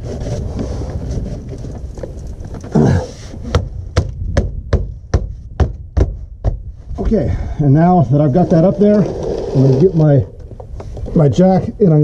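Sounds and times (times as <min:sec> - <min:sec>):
fists thumping foam board: 0:03.5 - 0:06.6.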